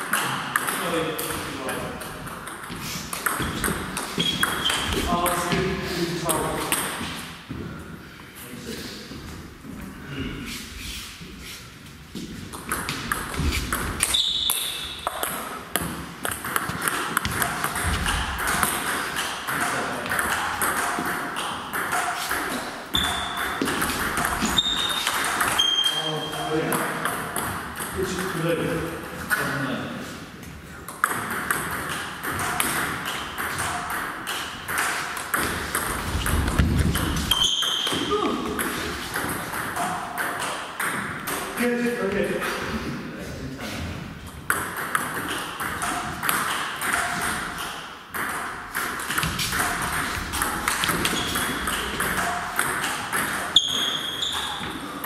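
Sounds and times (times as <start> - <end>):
table tennis ball pinging: 0.0 - 5.7, 12.5 - 28.3, 30.8 - 41.6, 44.3 - 54.8.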